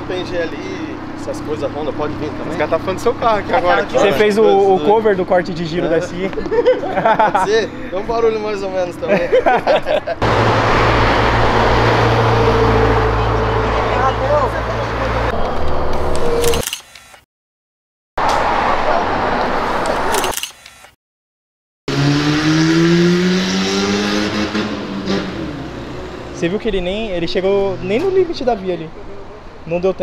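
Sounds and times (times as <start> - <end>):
road noise: 0.0 - 17.2, 18.2 - 21.0, 21.9 - 30.0
car engine accelerating: 10.2 - 16.4, 21.9 - 28.3.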